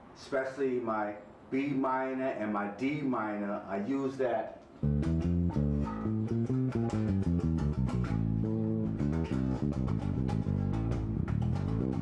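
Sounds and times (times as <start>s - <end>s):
electric bass guitar plucked notes: 4.8s - 12.0s.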